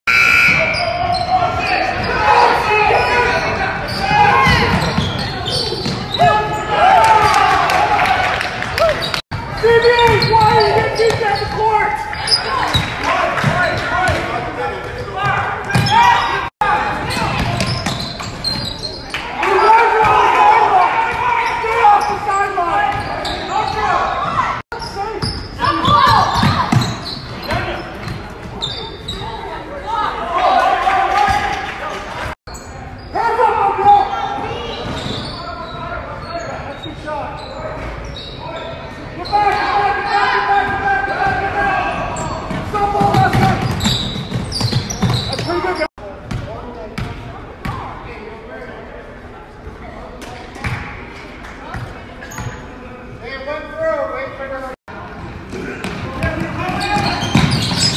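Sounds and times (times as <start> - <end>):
voices and shouts in a gym: 0.0 - 57.9.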